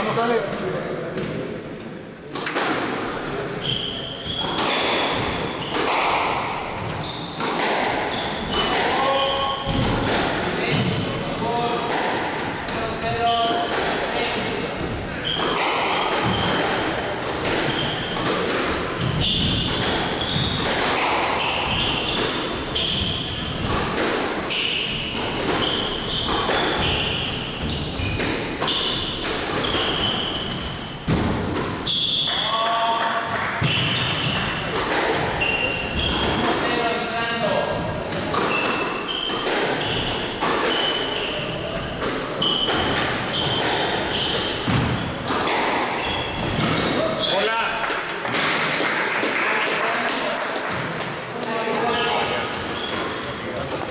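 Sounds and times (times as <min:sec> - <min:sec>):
squash ball hitting rackets and walls: 0:02.3 - 0:53.9
shoes squeaking on wooden floor: 0:03.6 - 0:06.0, 0:06.8 - 0:09.8, 0:17.5 - 0:18.3, 0:19.0 - 0:23.8, 0:24.5 - 0:31.0, 0:31.8 - 0:32.3, 0:35.3 - 0:36.8, 0:38.2 - 0:47.6, 0:51.5 - 0:53.9.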